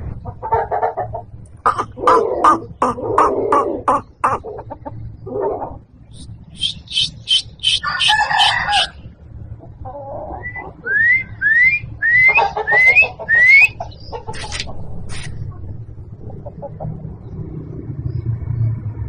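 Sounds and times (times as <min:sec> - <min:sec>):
rooster calling: 0:01.7 - 0:04.7, 0:06.2 - 0:09.0, 0:10.4 - 0:14.6
quick rising chirps: 0:06.1 - 0:08.9.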